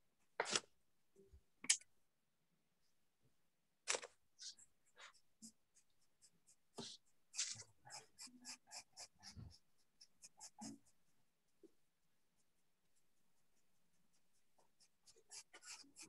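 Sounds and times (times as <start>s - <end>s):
pencil scratching on paper: 4.0s - 16.0s.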